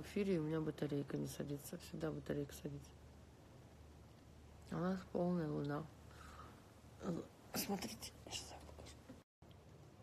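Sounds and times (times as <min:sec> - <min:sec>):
low steady hum: 0:00.0 - 0:10.0
person whispering: 0:07.0 - 0:09.1.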